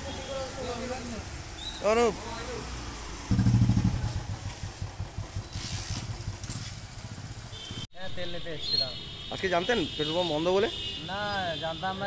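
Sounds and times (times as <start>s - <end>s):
motorcycle engine starting and idling: 3.3s - 7.9s.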